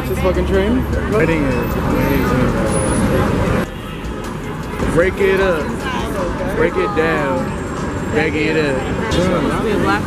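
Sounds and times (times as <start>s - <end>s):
crowd voices: 0.0s - 10.0s
traffic: 0.0s - 10.0s.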